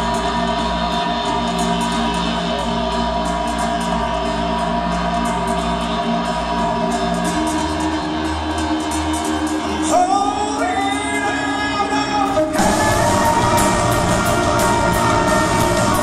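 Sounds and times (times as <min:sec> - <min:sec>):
live metal band playing: 0:00.0 - 0:16.0
person singing: 0:00.0 - 0:16.0
cymbal beat: 0:12.5 - 0:16.0.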